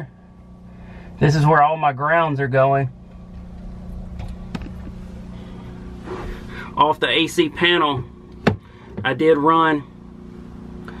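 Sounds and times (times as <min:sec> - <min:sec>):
low rumble: 0:00.0 - 0:08.9
low mechanical hum: 0:00.0 - 0:11.0.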